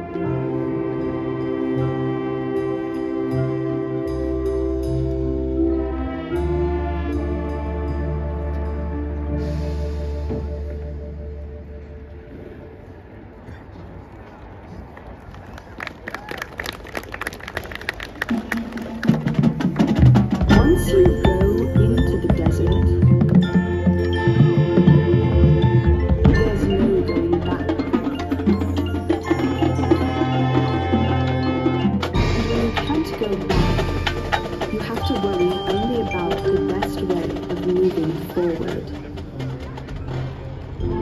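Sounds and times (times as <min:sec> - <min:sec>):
marching band music: 0:00.0 - 0:11.6, 0:18.1 - 0:41.0
faint crowd murmur: 0:00.0 - 0:19.7, 0:20.4 - 0:41.0.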